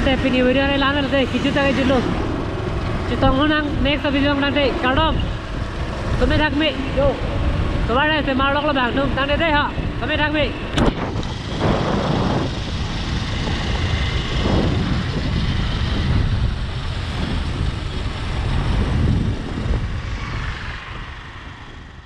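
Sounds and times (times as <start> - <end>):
motorcycle engine: 0.0 - 22.0
road noise: 0.0 - 22.0
wind rushing over microphone: 0.0 - 22.0.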